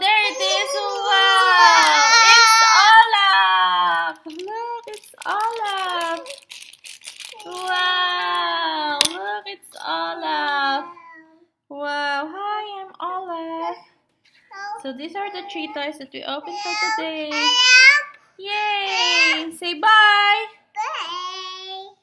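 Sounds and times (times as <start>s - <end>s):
toddler singing and babbling: 0.1s - 2.9s, 7.4s - 7.7s, 10.8s - 11.5s, 14.5s - 15.8s, 16.4s - 18.2s, 18.8s - 19.5s, 20.8s - 22.0s
plastic wrapper crinkling: 4.1s - 8.4s.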